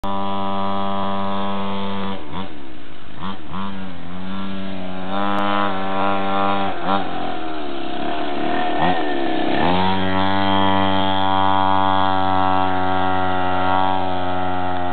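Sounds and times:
small dirt bike engine revving: 0.0s - 14.9s.

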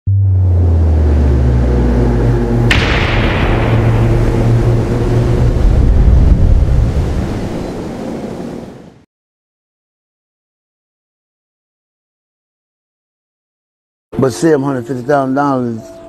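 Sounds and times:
deep rumbling drone: 0.0s - 7.6s
sharp thunderclap crack: 2.7s - 8.1s.

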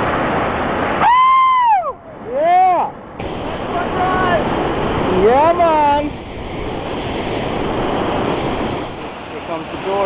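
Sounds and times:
whitewater roaring: 0.0s - 10.0s.

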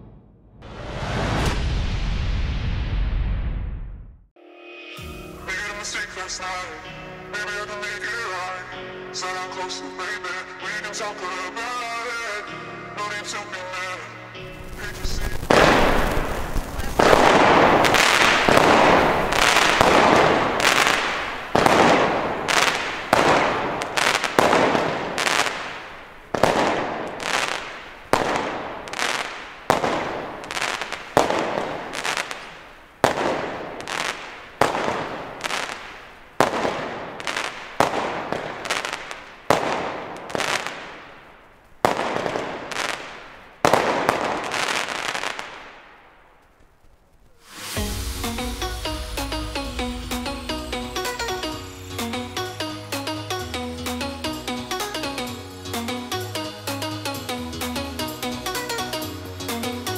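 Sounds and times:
firework bangs: 14.5s - 52.9s.

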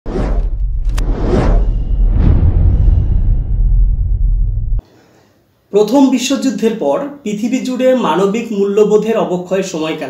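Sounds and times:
whooshes: 0.0s - 4.8s
deep bass: 0.1s - 4.8s.

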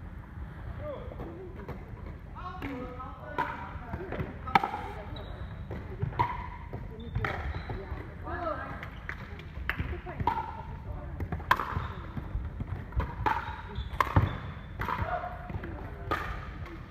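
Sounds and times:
sneakers squeaking on wooden floor: 4.9s - 6.0s, 6.8s - 8.2s, 11.7s - 12.4s, 13.4s - 14.8s.

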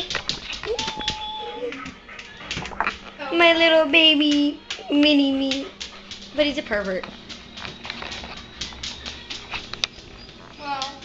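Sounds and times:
small dog whining: 0.7s - 2.6s.

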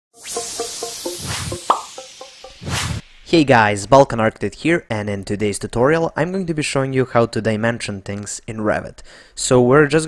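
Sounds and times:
rising note: 0.1s - 3.3s
plucked plopping notes: 0.2s - 3.0s
whooshing hiss: 0.2s - 3.8s.

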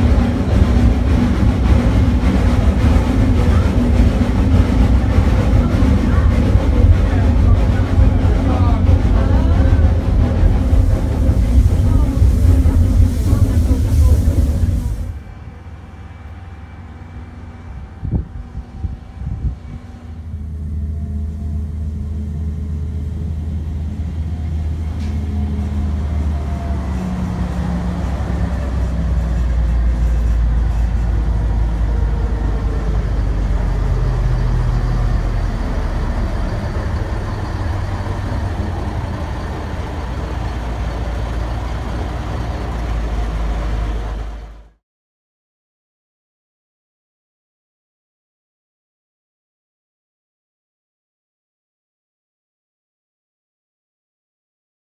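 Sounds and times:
diesel engine droning: 0.0s - 44.8s.

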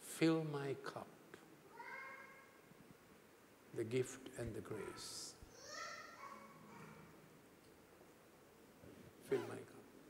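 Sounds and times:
faint high-pitched voice-like cry: 1.7s - 2.6s, 4.7s - 7.2s.

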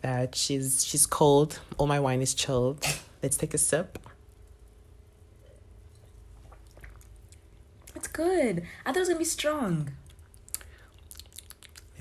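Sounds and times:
lip smacks and mouth clicks: 6.4s - 8.0s, 10.0s - 12.0s.

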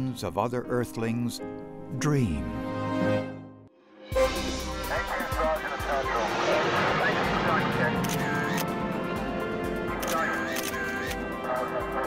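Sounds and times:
steady rushing noise: 4.6s - 10.5s.

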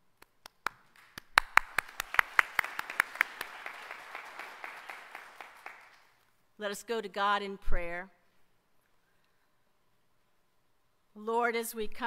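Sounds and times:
congregation applauding: 0.6s - 6.2s.

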